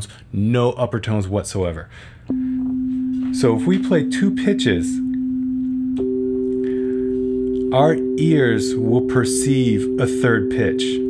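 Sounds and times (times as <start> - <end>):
synthesizer sine tones: 2.3 - 11.0.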